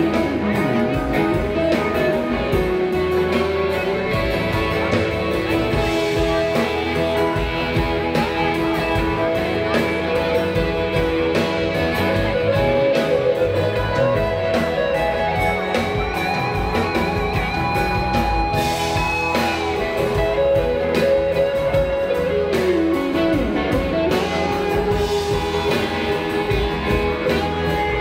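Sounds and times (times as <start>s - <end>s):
live band with lead guitar: 0.0s - 28.0s.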